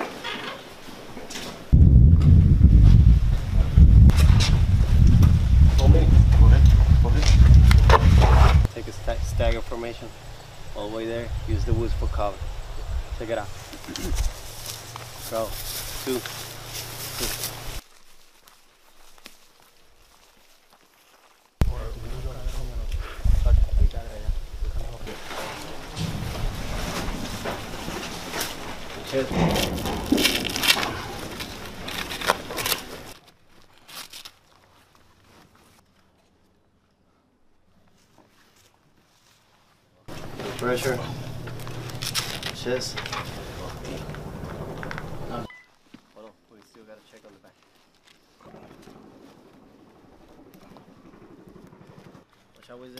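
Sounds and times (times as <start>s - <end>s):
wind buffeting microphone: 1.7s - 16.0s, 21.6s - 25.2s
sharp crackles: 13.2s - 23.0s, 23.6s - 36.0s, 40.1s - 52.9s
packaging crinkling and rustling: 27.6s - 35.8s, 41.5s - 43.4s.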